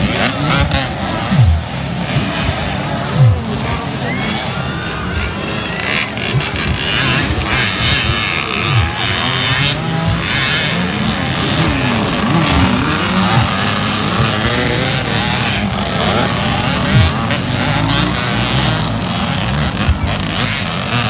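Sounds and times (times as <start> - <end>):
dirt bike engines revving: 0.0 - 21.0.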